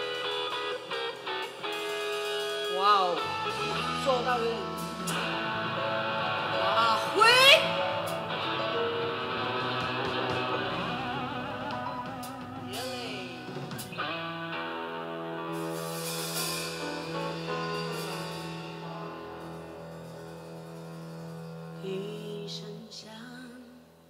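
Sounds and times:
guitar with sliding pitch: 0.0 - 22.4
live band playing: 0.0 - 22.8.

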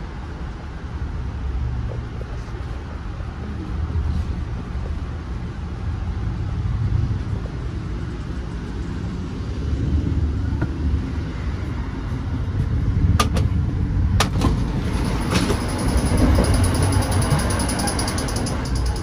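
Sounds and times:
train coach rumbling: 0.0 - 19.0
fast high ticking: 15.4 - 19.0.

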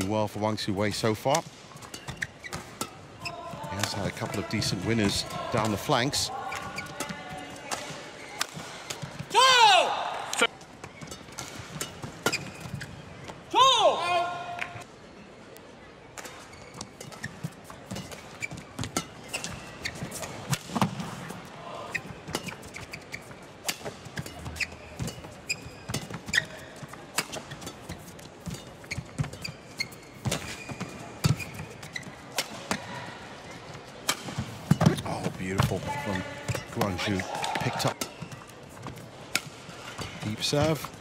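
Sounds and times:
rackets hitting shuttlecock: 1.3 - 9.3
shoes squeaking on court: 1.7 - 9.3, 10.5 - 13.5, 16.2 - 41.0.

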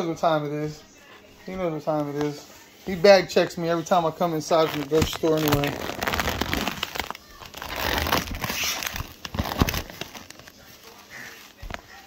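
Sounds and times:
plastic wrap crinkling: 1.0 - 12.0.

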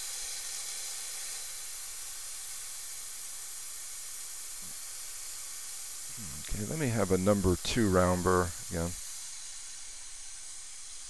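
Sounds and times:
dental equipment air hiss: 0.0 - 11.0.

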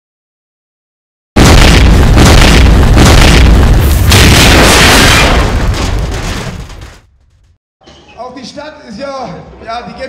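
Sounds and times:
deep boom and rumble: 1.4 - 7.1.

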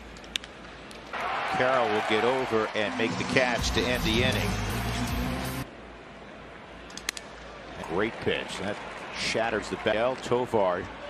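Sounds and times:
ballpark crowd noise: 1.1 - 4.7, 5.7 - 11.0.

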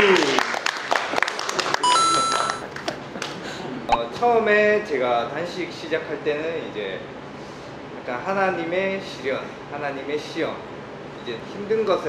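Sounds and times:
people clapping: 0.0 - 3.4
short electronic beep: 1.8 - 2.6
steady high chime: 1.8 - 2.6.

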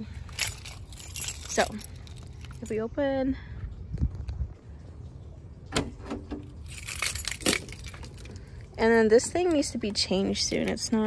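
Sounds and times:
keys jingling on a ring: 0.0 - 2.8, 6.6 - 11.0.

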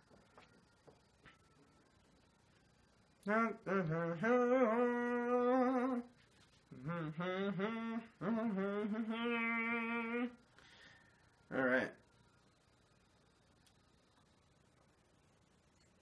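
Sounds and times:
man humming a tune: 3.2 - 6.1, 6.7 - 10.4.

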